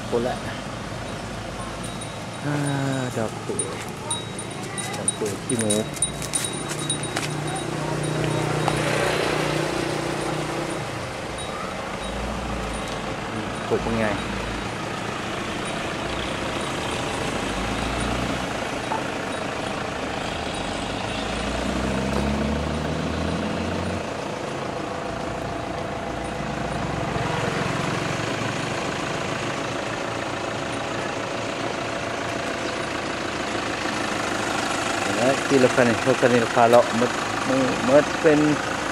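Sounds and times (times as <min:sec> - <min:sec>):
people talking: 0:00.0 - 0:00.7, 0:01.5 - 0:08.8, 0:13.3 - 0:14.4, 0:35.1 - 0:38.6
low vehicle engine rumble: 0:00.0 - 0:38.9.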